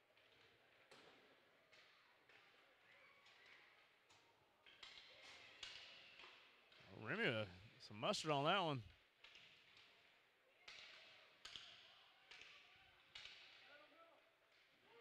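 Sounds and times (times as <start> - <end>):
person speaking: 6.9 - 8.8
low arena background: 6.9 - 8.9.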